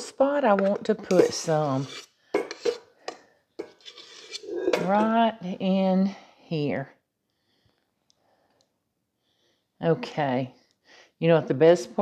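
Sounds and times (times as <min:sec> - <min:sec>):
metal spatula scraping mixing bowl: 0:00.0 - 0:05.3.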